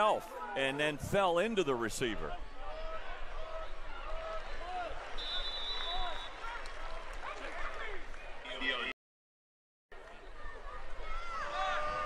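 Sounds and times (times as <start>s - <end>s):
stadium crowd shouting: 2.1s - 8.9s, 10.0s - 12.0s
referee's whistle: 5.2s - 6.4s.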